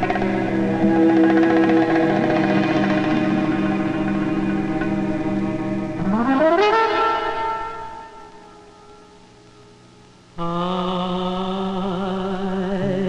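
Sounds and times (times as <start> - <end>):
film score music: 0.0 - 9.3.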